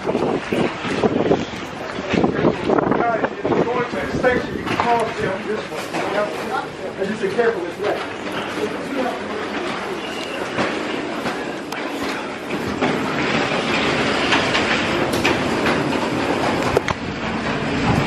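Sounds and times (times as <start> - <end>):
rail clicks: 0.0 - 18.0
train rumbling on rails: 0.0 - 18.0.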